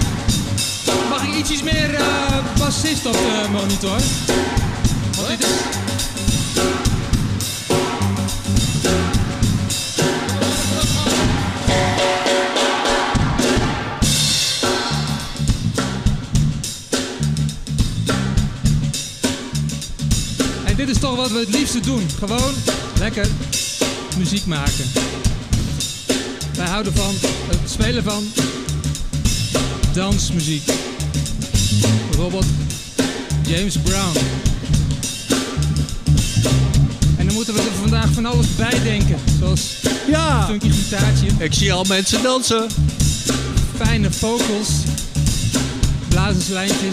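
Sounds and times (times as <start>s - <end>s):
bass guitar: 0.0s - 12.2s, 13.2s - 46.9s
drum kit: 0.0s - 46.9s.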